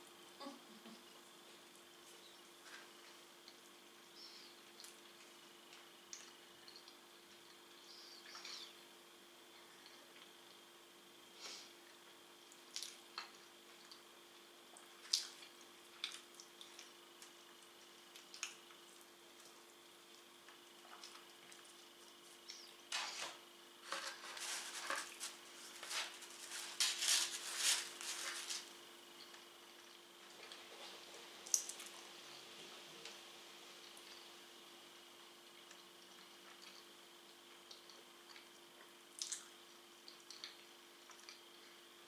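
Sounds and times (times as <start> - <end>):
faint steady hum: 0.0 - 42.0
chewing mouth clicks and smacks: 14.7 - 22.8, 35.6 - 36.9, 37.5 - 41.5
cardboard box crackling and rustling: 23.9 - 28.6.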